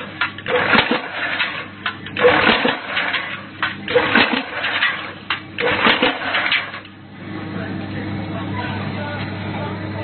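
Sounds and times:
hydraulic punching machine: 0.0s - 7.0s
sharp machine clicks: 0.2s - 6.9s.

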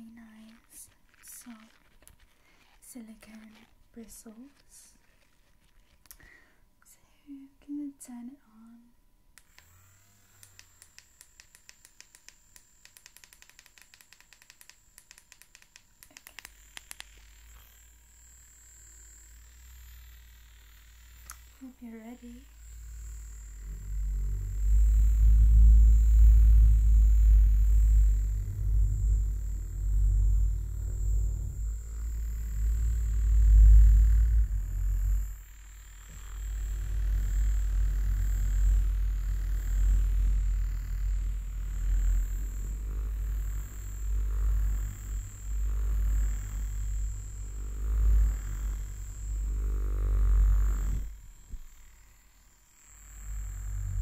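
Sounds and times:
light clicks of massager switch: 10.4s - 17.2s
high motor whine: 16.5s - 54.0s
low rumble against microphone cover: 22.3s - 51.7s, 53.2s - 54.0s.

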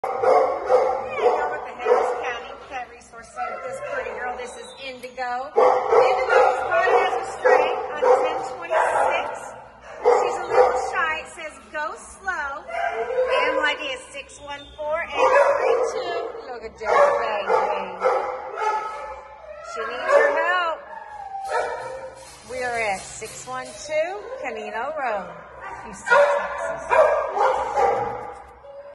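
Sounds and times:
dog barking: 0.0s - 2.6s, 5.5s - 11.2s, 12.7s - 13.8s, 15.1s - 20.8s, 21.5s - 22.2s, 25.5s - 28.6s.

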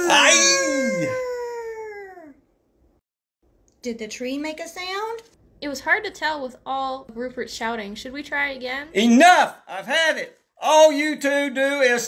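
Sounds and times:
person screaming: 0.0s - 2.4s.

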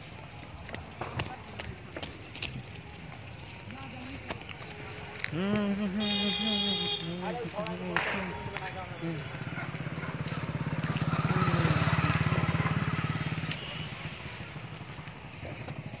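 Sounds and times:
motorcycle engine passing by: 9.0s - 16.0s.

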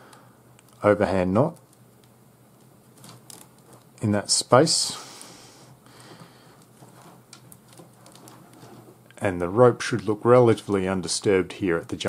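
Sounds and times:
rope rustling and ticking: 0.6s - 4.1s, 6.0s - 9.2s, 10.0s - 12.0s.

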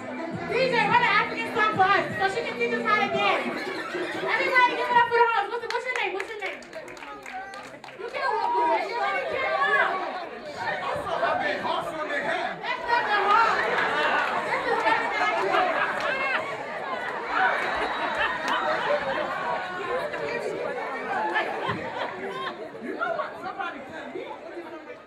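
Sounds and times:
music: 0.0s - 5.4s
crowd chatter: 0.0s - 25.0s
people talking through microphones: 0.0s - 25.0s.

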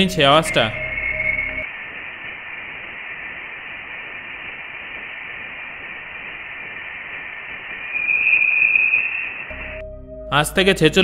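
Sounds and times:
high electronic tone: 0.0s - 1.7s, 8.0s - 10.3s
radio-like hiss: 0.0s - 9.5s.

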